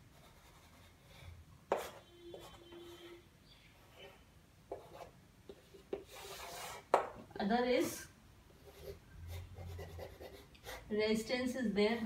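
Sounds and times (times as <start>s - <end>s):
chalk tapping on board: 1.7s - 2.8s, 4.7s - 7.2s
chalk scraping on chalkboard: 3.8s - 7.0s.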